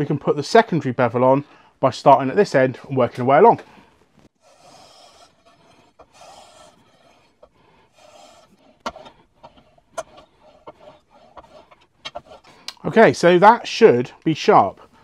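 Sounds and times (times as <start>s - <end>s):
chisel rasping on abrasive film: 4.4s - 12.6s.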